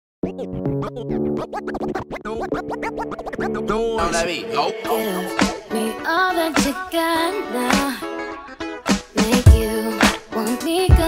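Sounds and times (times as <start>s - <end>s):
turntable scratching: 0.3s - 5.9s, 8.9s - 11.0s.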